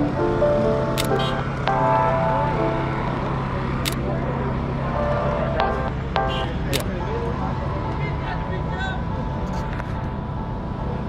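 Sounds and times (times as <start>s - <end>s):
low traffic rumble: 0.0s - 11.0s
sharp click: 1.0s - 1.3s
indistinct voices: 1.0s - 11.0s.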